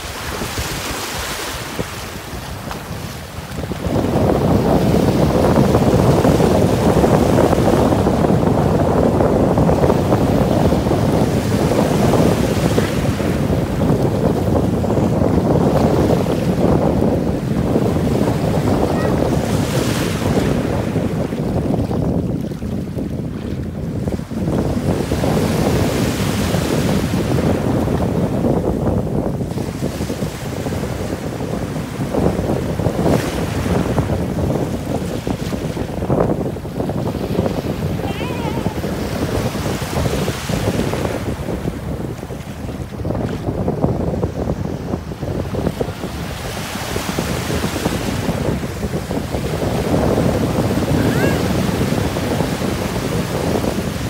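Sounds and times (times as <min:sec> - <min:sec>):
sea waves breaking on shore: 0:00.0 - 0:54.0
wind buffeting microphone: 0:00.0 - 0:54.0.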